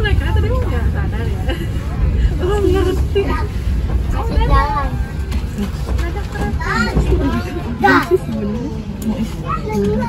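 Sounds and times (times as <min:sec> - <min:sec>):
train carriage rumble: 0:00.0 - 0:10.0
children chattering and squealing: 0:01.2 - 0:10.0.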